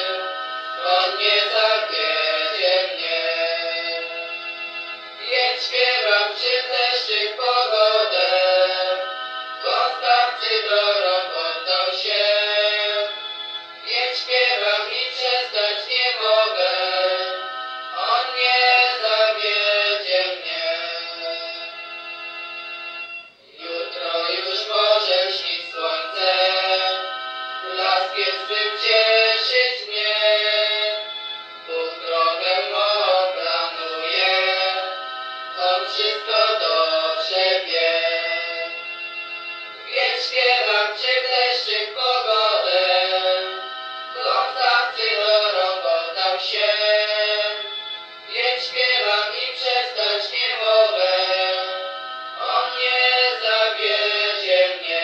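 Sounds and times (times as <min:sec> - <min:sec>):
religious song being sung: 0:00.0 - 0:55.0.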